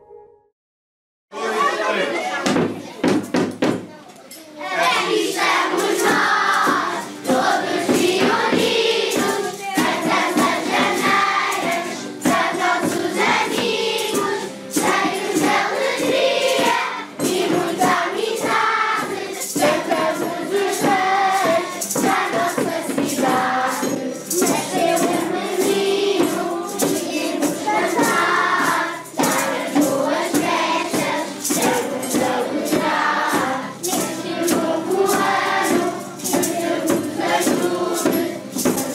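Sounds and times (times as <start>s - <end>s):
children singing carols: 1.4s - 3.2s, 4.5s - 38.9s
tambourine jingling: 4.7s - 38.9s.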